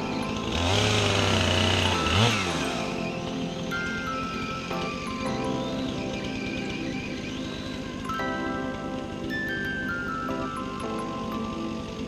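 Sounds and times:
background music: 0.0s - 12.0s
electric chainsaw running: 0.0s - 12.0s.

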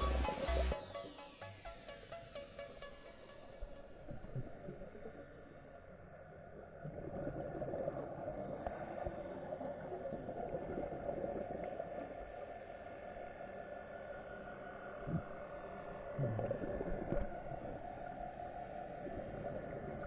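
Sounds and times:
muffled underwater crackling hiss: 0.0s - 20.0s.

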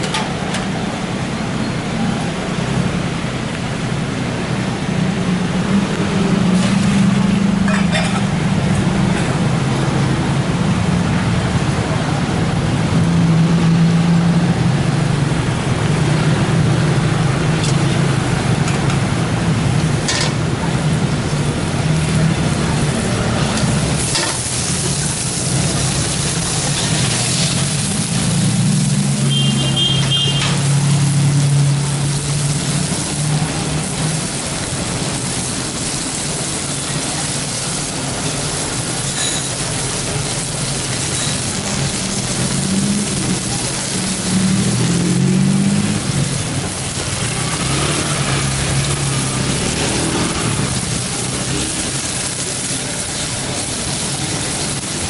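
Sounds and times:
vegetables sizzling in a wok: 0.0s - 55.0s.

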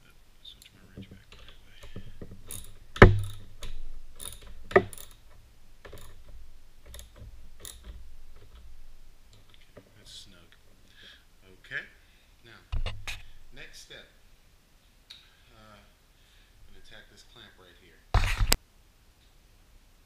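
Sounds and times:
hand ratchet clicking: 1.3s - 9.6s
metal parts clinking: 1.3s - 9.6s
sharp knock: 1.9s - 3.5s.

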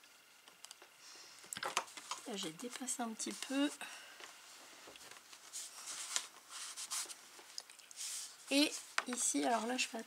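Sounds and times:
cloth rubbing over cardboard: 5.4s - 7.2s, 8.0s - 10.0s.

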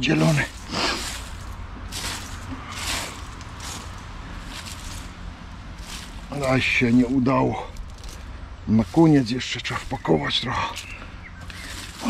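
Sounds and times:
low steady rumble: 0.0s - 12.0s
soft rustling swishes in soil: 0.0s - 12.0s.

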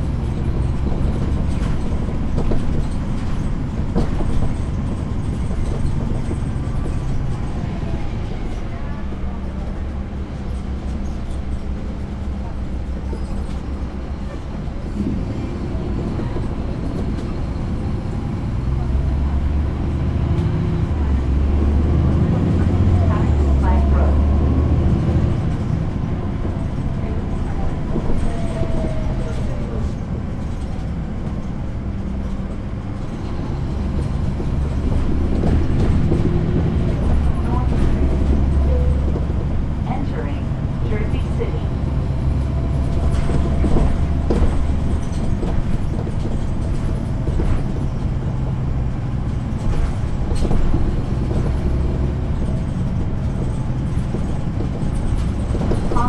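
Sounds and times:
bus body rattling: 0.0s - 56.0s
bus diesel engine rumbling: 0.0s - 56.0s.

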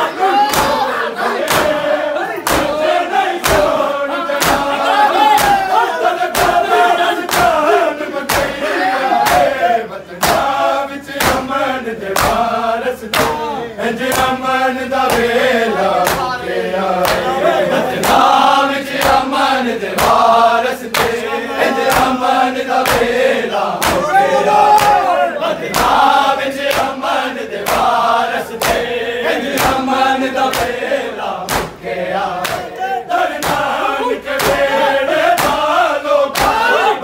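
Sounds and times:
men chanting lament: 0.0s - 37.0s
men slapping chests: 0.4s - 13.5s, 14.1s - 14.4s, 15.0s - 15.4s, 16.0s - 16.4s, 17.0s - 19.4s, 20.0s - 36.9s.

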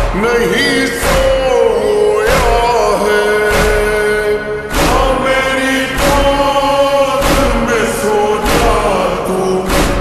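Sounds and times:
slow beat: 0.0s - 10.0s
voice singing long echoing notes: 0.0s - 10.0s.

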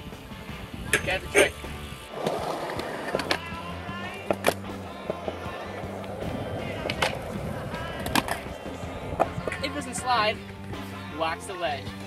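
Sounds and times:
background music with bass line: 0.0s - 12.0s
skateboard rolling on concrete: 0.0s - 12.0s
skateboard clacking on ground: 2.1s - 10.8s.

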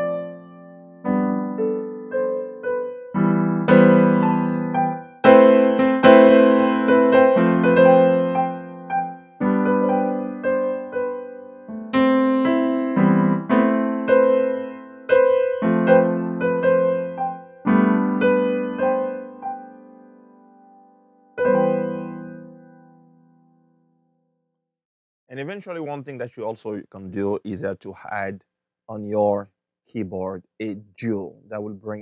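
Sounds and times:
piano chords and melody notes: 0.0s - 24.1s.

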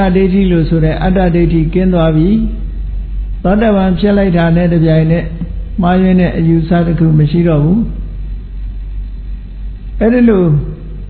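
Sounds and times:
low hum and rumble: 0.0s - 11.0s.

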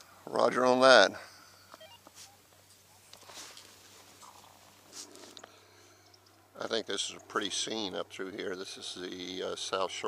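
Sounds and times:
faint short beeps: 1.6s - 2.1s.

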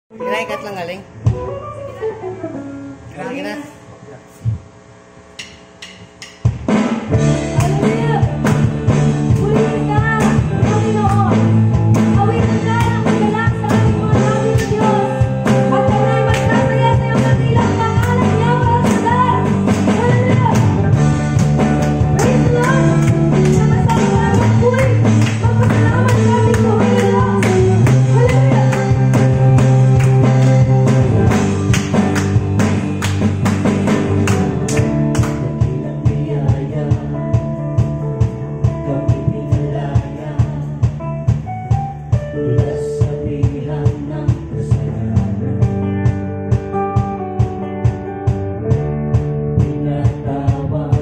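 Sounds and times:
electric guitar: 0.1s - 4.8s, 5.4s - 51.0s
electric bass: 0.1s - 51.0s
steady drum beat: 5.4s - 51.0s
band playing worship song: 6.4s - 51.0s.

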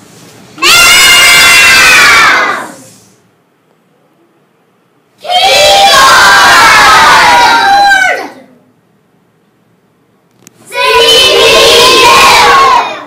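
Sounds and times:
children shouting together: 0.6s - 2.8s, 5.2s - 8.5s, 10.7s - 13.0s.

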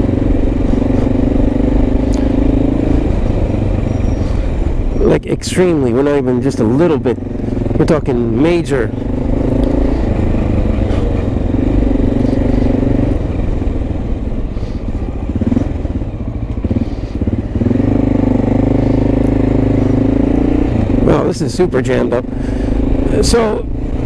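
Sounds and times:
motorcycle engine: 0.0s - 24.0s.

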